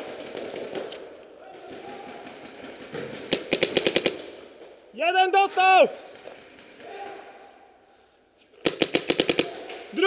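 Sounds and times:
paintball marker rapid shots: 0:00.0 - 0:04.4, 0:08.6 - 0:09.9.

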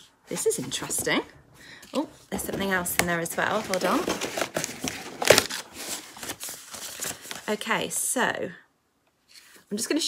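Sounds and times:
cardboard box rustling and crinkling: 0:02.0 - 0:07.6.

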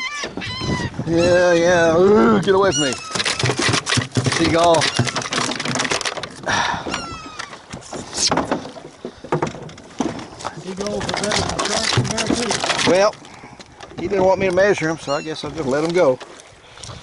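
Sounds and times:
seagull calling: 0:00.0 - 0:08.2, 0:14.7 - 0:15.7.

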